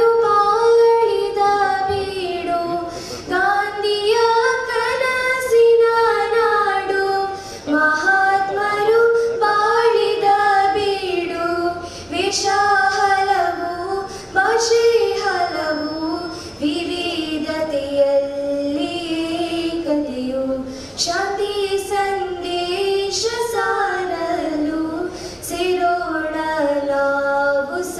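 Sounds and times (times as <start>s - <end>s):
girls singing into microphones: 0.0s - 27.9s.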